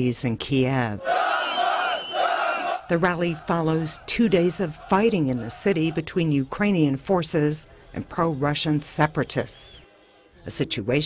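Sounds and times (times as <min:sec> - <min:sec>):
crowd of men chanting: 0:01.0 - 0:06.2.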